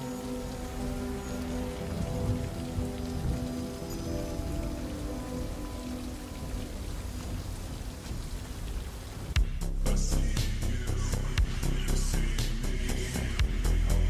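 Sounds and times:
steady rain falling: 0.0s - 14.0s
low synthesizer drone: 9.4s - 14.0s.

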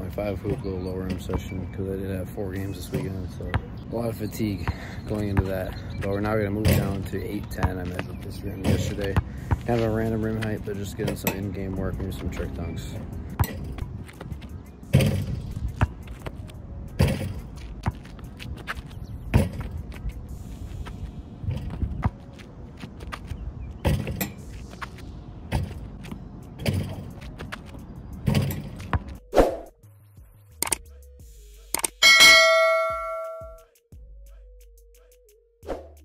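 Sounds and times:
ball bouncing on asphalt: 3.4s - 3.8s, 4.5s - 12.5s, 13.3s - 20.2s, 20.8s - 29.7s
ball clanging on rim: 32.0s - 33.6s
loud electronic bell ding: 32.0s - 33.6s.

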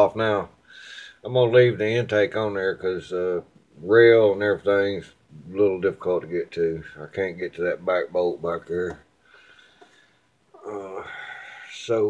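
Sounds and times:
man's wordless voiced sound: 0.0s - 0.6s, 1.2s - 9.1s, 10.6s - 12.0s.

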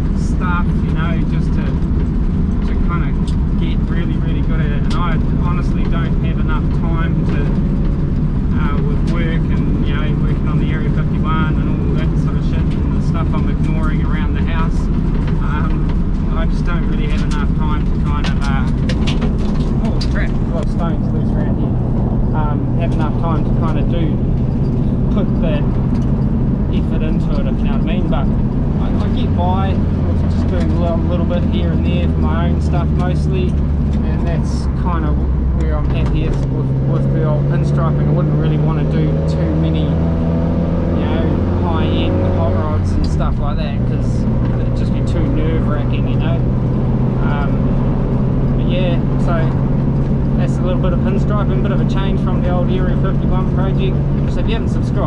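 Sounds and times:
man talking: 0.0s - 1.9s, 2.6s - 7.6s, 8.5s - 19.0s, 19.7s - 24.3s, 25.0s - 25.7s, 26.7s - 40.1s, 40.9s - 46.4s, 47.2s - 47.8s, 48.6s - 49.6s, 50.4s - 55.0s
car engine drone: 0.0s - 55.0s
road noise inside car: 0.0s - 55.0s.

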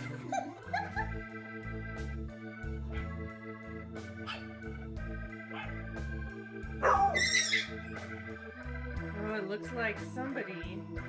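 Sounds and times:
organ-like keyboard music: 0.0s - 11.0s
high-pitched cry: 7.0s - 7.8s.

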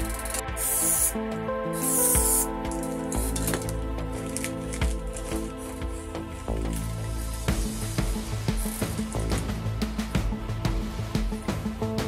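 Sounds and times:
spray paint can hissing: 0.0s - 5.5s, 6.6s - 9.4s
background music: 0.0s - 12.0s.

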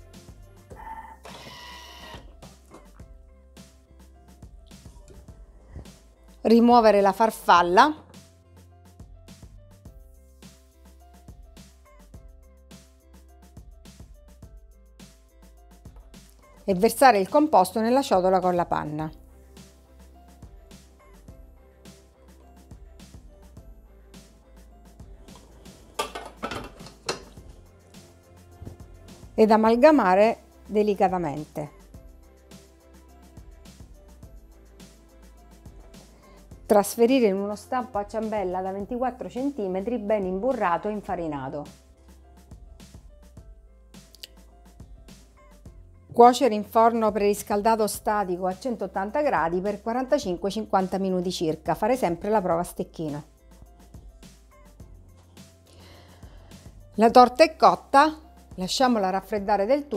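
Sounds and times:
soft background music: 0.0s - 59.9s
metal mixing bowl clanking: 25.3s - 27.6s.

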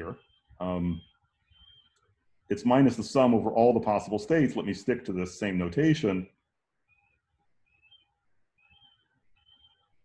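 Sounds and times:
faint high chirps: 0.0s - 3.0s, 6.3s - 10.0s.

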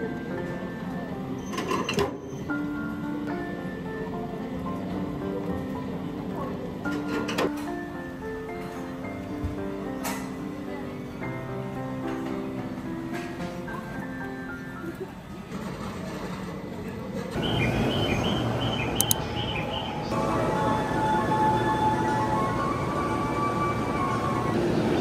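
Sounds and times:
soft background music: 0.0s - 16.4s, 17.3s - 25.0s
busy train station noise: 0.0s - 25.0s
sharp click: 19.0s - 19.2s.

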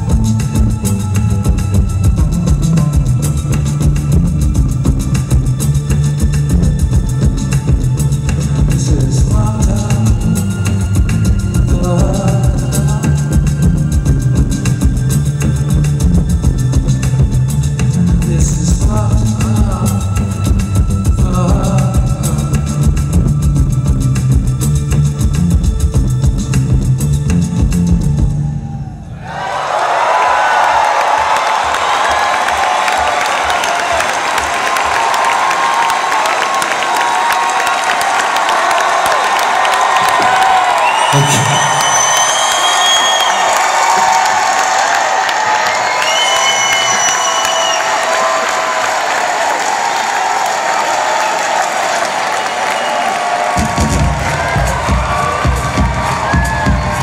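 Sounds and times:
electronic bass beat: 0.0s - 28.4s, 53.6s - 57.0s
audience cheering and applauding: 28.2s - 57.0s
long whistles: 40.6s - 44.1s, 45.6s - 48.2s, 52.3s - 53.3s.

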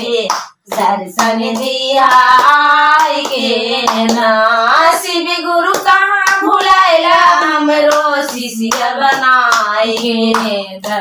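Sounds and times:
hand clapping: 0.0s - 6.8s, 7.4s - 11.0s
women singing devotional song: 0.0s - 11.0s.

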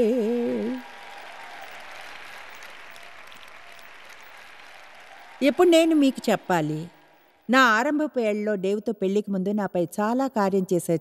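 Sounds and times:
audience applauding: 0.0s - 7.5s.

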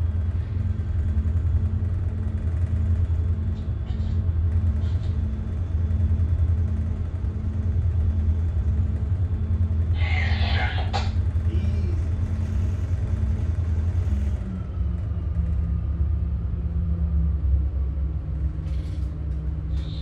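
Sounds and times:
diesel engines droning: 0.0s - 20.0s.

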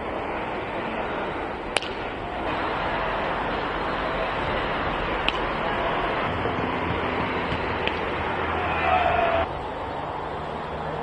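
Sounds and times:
outdoor rushing noise: 0.0s - 11.0s.

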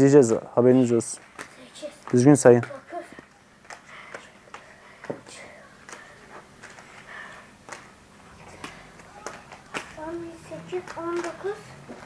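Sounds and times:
plastic cones clicking: 8.5s - 12.0s.

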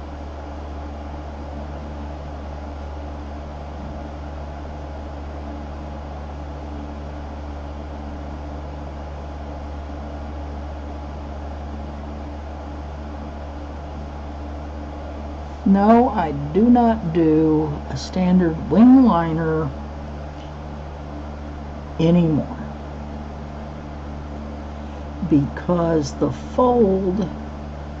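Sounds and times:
fan hum with hiss: 0.0s - 28.0s.

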